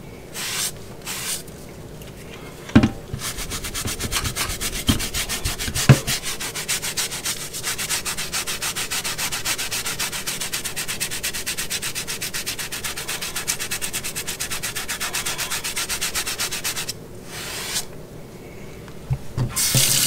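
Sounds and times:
knocks: 2.8s - 3.0s
toothbrush scrubbing fabric: 3.2s - 17.9s.

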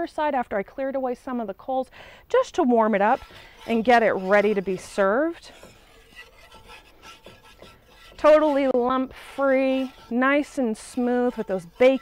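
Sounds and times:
spoon scraping a skillet: 2.4s - 12.0s.

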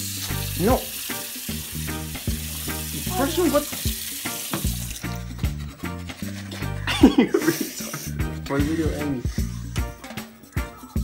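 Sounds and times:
toothbrush scrubbing teeth: 0.0s - 9.6s
background music with beat: 0.1s - 11.0s.

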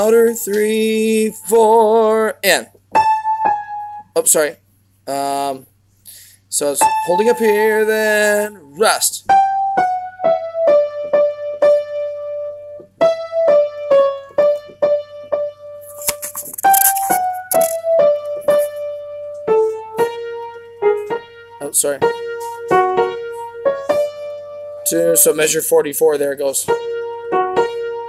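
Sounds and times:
piano playing single notes: 9.3s - 25.9s.

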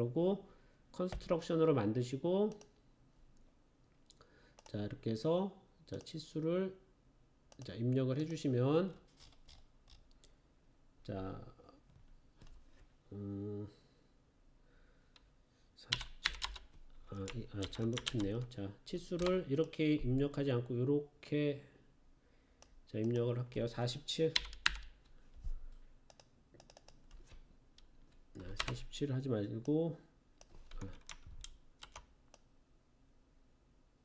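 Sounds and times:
computer keyboard keystrokes: 15.9s - 18.5s, 19.2s - 19.7s, 24.4s - 25.0s, 26.1s - 27.4s, 30.4s - 32.4s.

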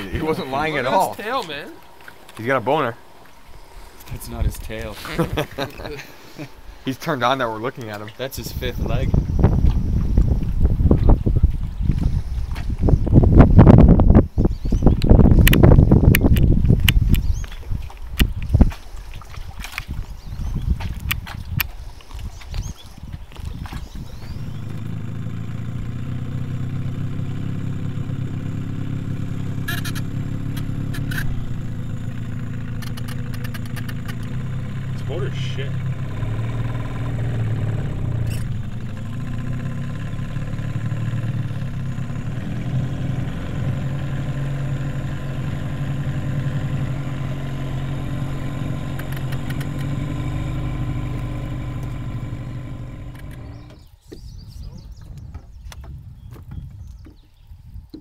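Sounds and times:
outboard motor running: 0.0s - 57.2s.

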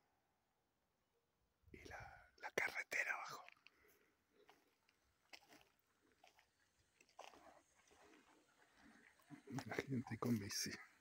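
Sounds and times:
footsteps crunching on dirt trail: 2.6s - 10.8s.

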